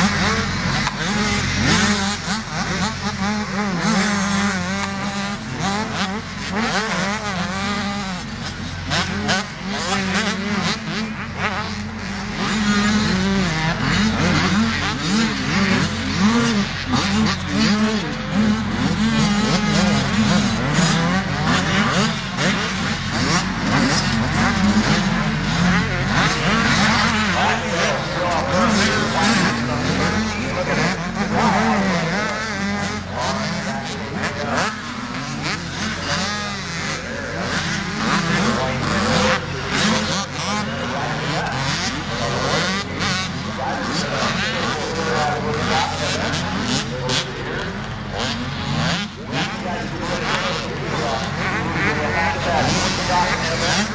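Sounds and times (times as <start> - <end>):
dirt bike engines revving: 0.0 - 53.9.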